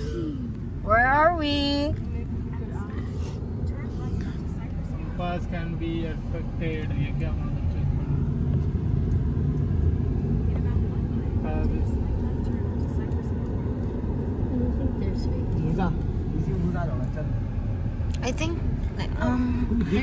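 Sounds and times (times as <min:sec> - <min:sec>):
car road and engine rumble: 0:00.0 - 0:20.0.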